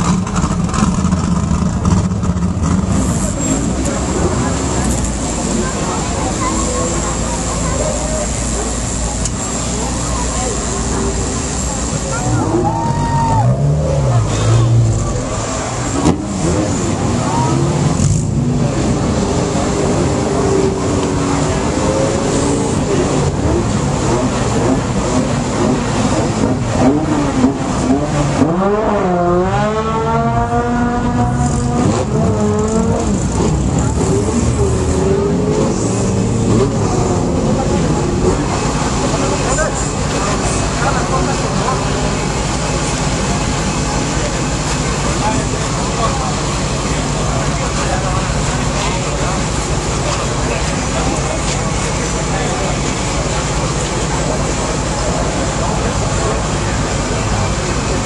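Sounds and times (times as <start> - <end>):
crowd voices: 0.0 - 58.0
engine revving: 0.0 - 58.0
race vehicle engines running: 0.0 - 58.0.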